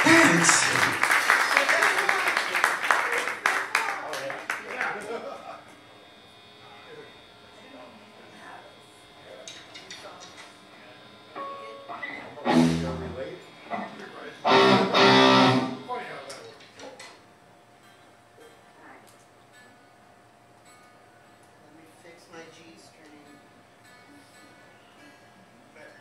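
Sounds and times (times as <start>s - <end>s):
loud strummed guitar chords: 0.0s - 0.9s, 12.4s - 13.2s, 14.4s - 15.9s
electric guitars played softly: 11.4s - 13.8s, 14.4s - 15.9s.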